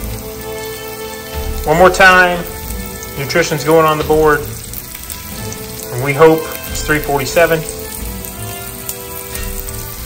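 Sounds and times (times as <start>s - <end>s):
background music with held notes: 0.0s - 10.0s
hot dogs sizzling in a pan: 0.0s - 10.0s.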